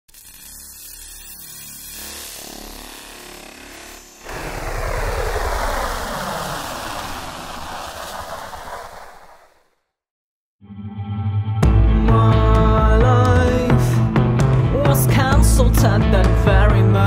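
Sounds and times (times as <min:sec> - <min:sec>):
loud rushing noise: 0:04.2 - 0:09.7.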